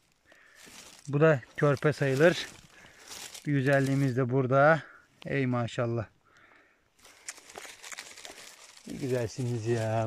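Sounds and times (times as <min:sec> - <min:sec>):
pine needles and twigs crackling: 0:00.0 - 0:10.0.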